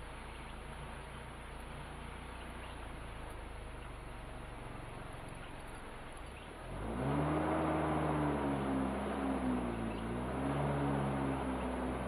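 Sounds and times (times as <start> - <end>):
vehicle engine revving: 6.6 - 12.0.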